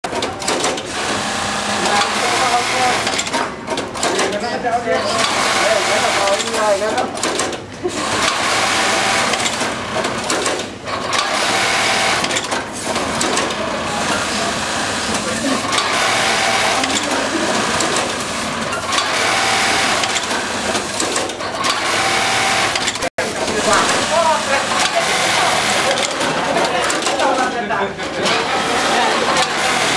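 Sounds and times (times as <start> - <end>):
sewing machine running: 0.0 - 4.3, 5.0 - 27.5, 28.1 - 29.9.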